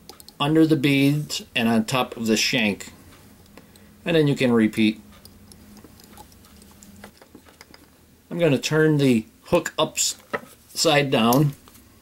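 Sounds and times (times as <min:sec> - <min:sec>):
low steady hum: 0:00.0 - 0:12.0.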